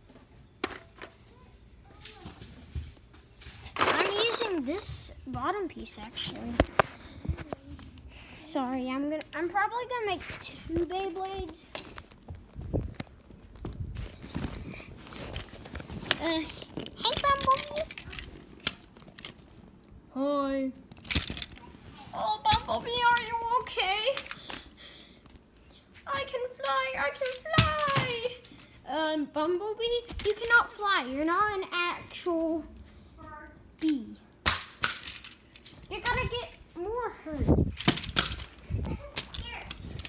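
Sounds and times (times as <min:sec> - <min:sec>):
child talking and vocalizing: 0:01.3 - 0:02.6, 0:03.7 - 0:11.7, 0:16.2 - 0:18.4, 0:21.6 - 0:24.5, 0:25.8 - 0:34.3, 0:35.9 - 0:37.7, 0:38.6 - 0:40.0.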